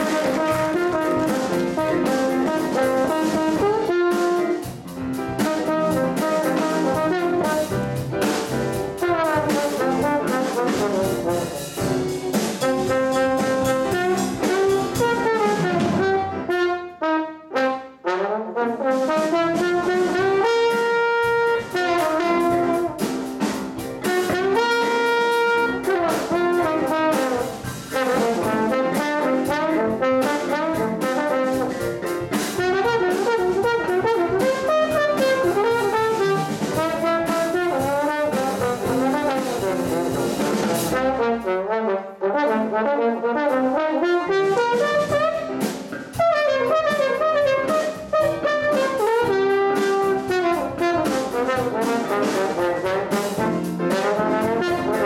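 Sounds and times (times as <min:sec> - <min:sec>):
jazz big band playing: 0:00.0 - 0:55.0
trombone solo: 0:00.0 - 0:55.0.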